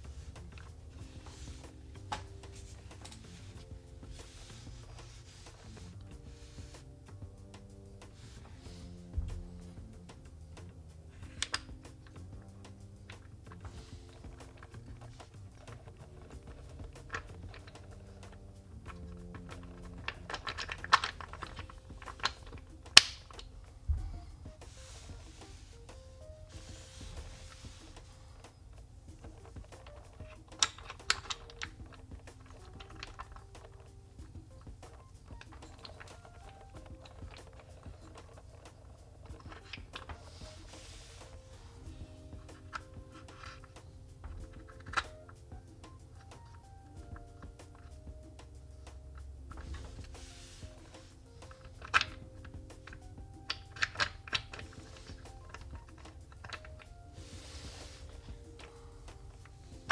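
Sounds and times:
soft background music: 0:00.0 - 0:59.9
wooden blocks clicking and knocking: 0:00.0 - 0:59.9.

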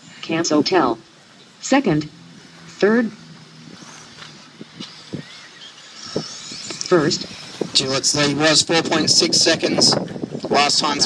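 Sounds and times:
rc car motor whine: 0:00.0 - 0:11.0.

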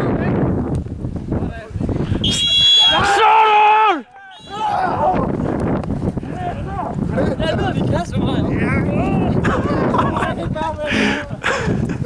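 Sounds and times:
loud held yell: 0:02.3 - 0:05.2
people shouting: 0:02.3 - 0:05.3
voices cheering: 0:02.3 - 0:05.4.

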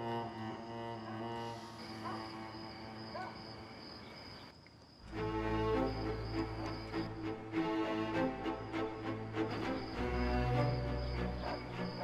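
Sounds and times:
soundtrack music with low strings: 0:00.0 - 0:02.2, 0:05.0 - 0:12.0.

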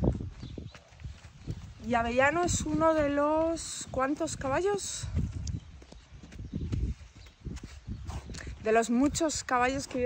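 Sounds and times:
person's footsteps: 0:00.0 - 0:03.6, 0:04.3 - 0:10.0
horse hooves on sandy dirt: 0:00.0 - 0:10.0.

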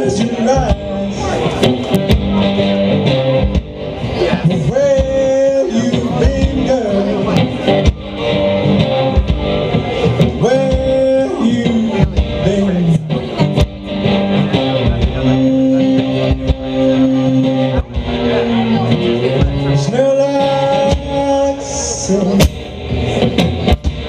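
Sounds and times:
electric guitar playing rock: 0:00.0 - 0:24.0.

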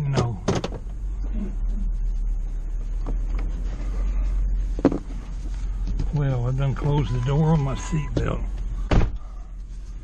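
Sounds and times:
engine idling rumble: 0:00.0 - 0:10.0
car door shutting: 0:08.0 - 0:09.2.

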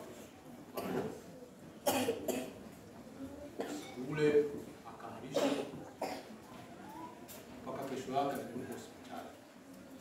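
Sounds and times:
person coughing: 0:00.8 - 0:01.1, 0:01.8 - 0:02.6, 0:05.3 - 0:06.3.

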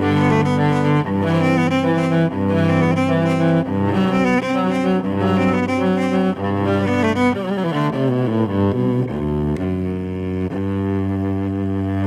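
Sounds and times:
electric violin bowed low: 0:00.0 - 0:12.0.

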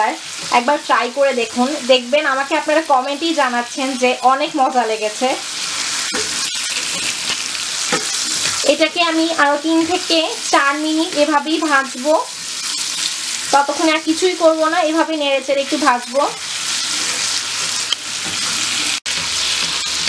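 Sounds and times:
apple sizzling in hot oil: 0:00.0 - 0:20.0
spatula stirring in pan: 0:03.8 - 0:14.3.

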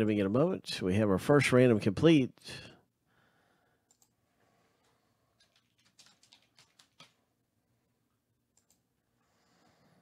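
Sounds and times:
faint clicks: 0:03.9 - 0:04.2, 0:08.6 - 0:08.8.

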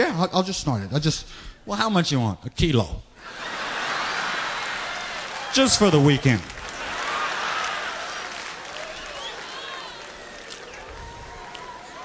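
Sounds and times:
crowd noise: 0:03.2 - 0:12.0
audience applauding: 0:03.4 - 0:12.0.

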